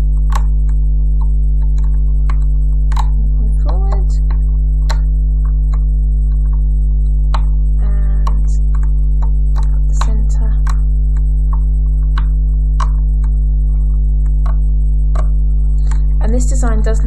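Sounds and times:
loud low electrical hum: 0.0 - 17.0
person speaking: 3.0 - 4.4, 7.8 - 8.7, 9.6 - 10.8, 15.8 - 17.0.

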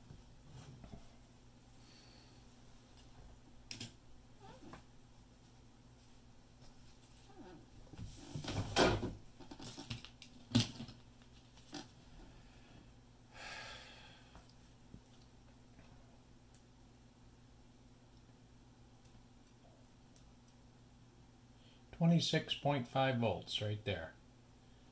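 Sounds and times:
faint steady hum: 0.0 - 24.9.

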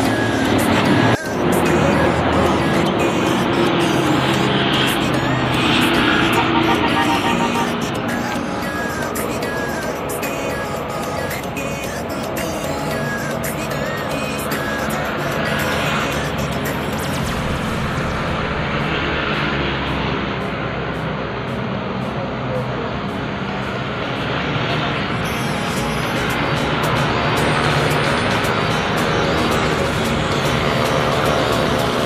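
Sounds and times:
background music: 0.0 - 32.0
city road traffic: 0.0 - 32.0.

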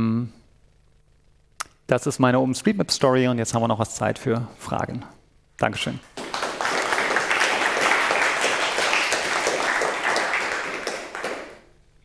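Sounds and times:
audience applauding: 6.2 - 11.7.

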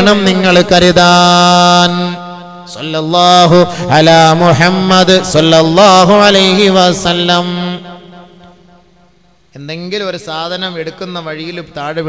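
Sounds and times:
person chanting religious melody: 0.0 - 12.0.

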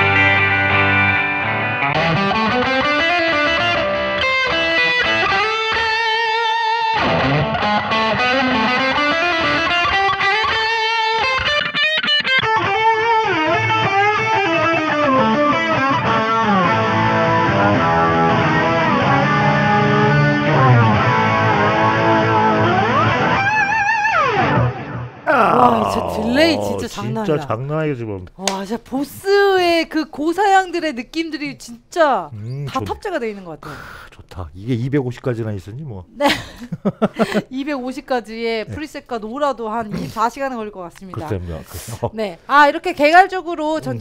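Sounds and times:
electric guitar with heavy delay: 0.0 - 26.3.

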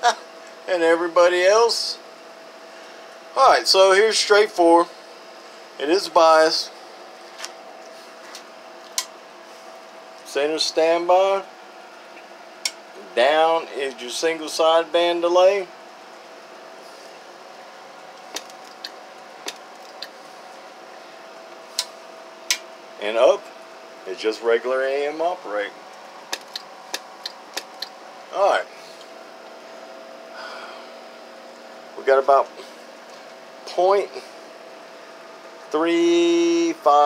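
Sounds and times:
faint hum and hiss: 0.0 - 37.0
sharp click: 26.3 - 27.9.

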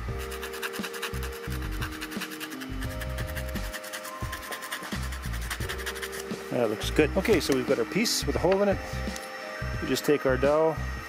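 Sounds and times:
sandpaper rubbing wood: 0.0 - 6.8
background music with held notes: 0.0 - 11.0.

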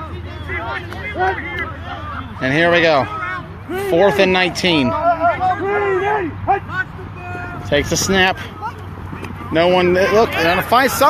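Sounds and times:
men calling out: 0.0 - 11.0.

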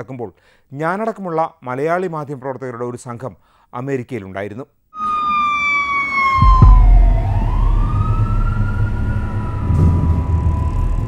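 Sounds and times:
emergency vehicle siren wailing: 5.0 - 11.0
sharp low bump: 6.4 - 10.6
engine and traffic rumble: 6.4 - 11.0.

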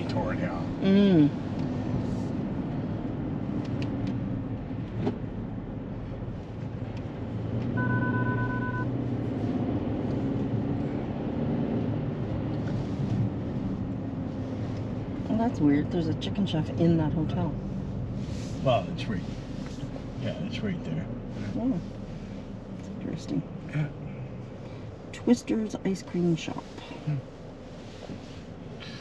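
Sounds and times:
car cabin road noise hum: 0.0 - 29.0
electronic beep: 7.8 - 8.9.

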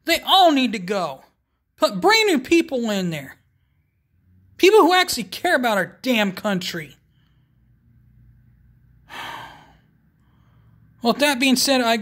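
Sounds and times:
faint room noise: 0.0 - 12.0
man sighing: 9.1 - 9.8.

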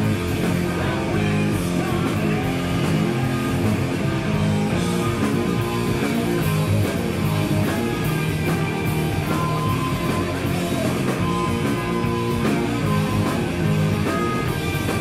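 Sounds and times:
drums with cymbal hits: 0.0 - 15.0
electric bass: 0.0 - 15.0
electric guitar: 0.0 - 15.0.

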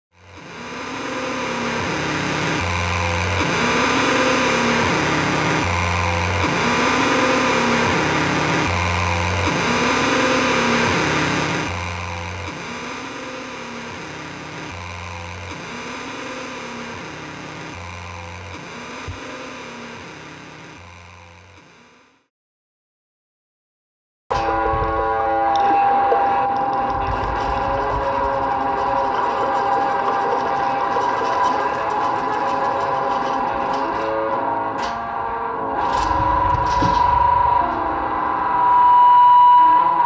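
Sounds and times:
rising and falling tones: 0.3 - 21.8, 24.4 - 40.0
low pulse: 24.4 - 34.2, 35.2 - 40.0.

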